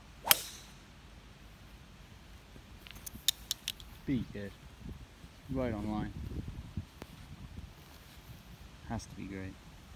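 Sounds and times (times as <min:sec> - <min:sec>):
golf club striking ball: 0:00.2 - 0:00.8
golf club swoosh: 0:00.2 - 0:00.8.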